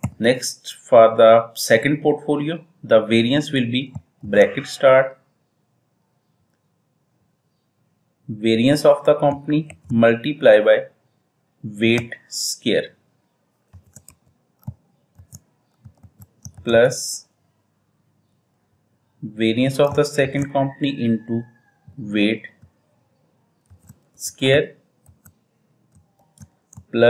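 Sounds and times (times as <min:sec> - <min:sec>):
computer keyboard typing: 0:00.0 - 0:00.2, 0:09.3 - 0:10.0, 0:13.7 - 0:16.8, 0:19.7 - 0:20.6, 0:23.6 - 0:25.3, 0:25.9 - 0:27.0.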